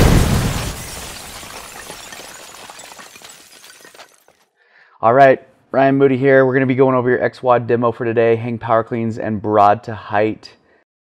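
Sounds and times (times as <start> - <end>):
glass shattering: 0.0 - 4.4.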